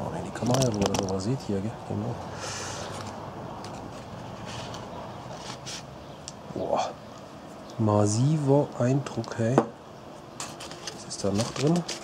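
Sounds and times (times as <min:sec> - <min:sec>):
cardboard scraping and rustling: 0:02.9 - 0:05.9, 0:10.4 - 0:12.0.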